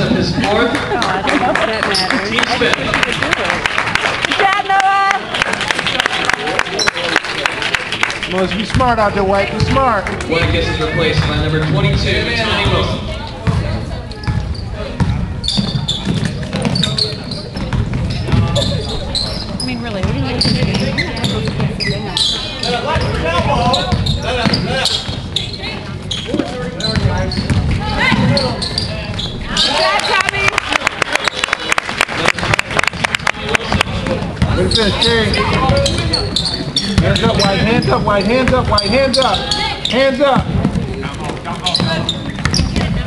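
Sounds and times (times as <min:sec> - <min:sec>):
spectators talking: 0:00.0 - 0:43.0
basketball bouncing on hardwood: 0:27.0 - 0:28.4, 0:41.8 - 0:43.0.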